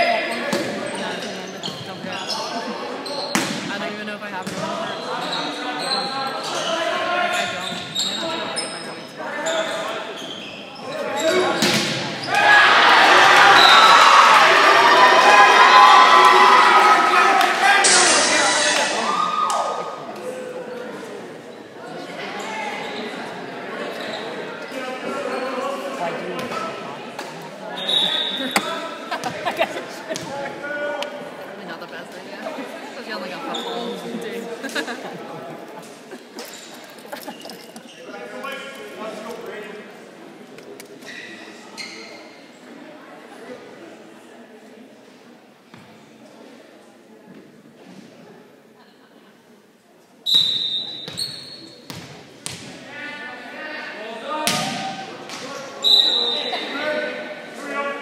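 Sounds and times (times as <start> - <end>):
people talking in echoing gym: 0.0 - 58.0
referee's whistle blast: 50.3 - 51.6, 55.8 - 56.7.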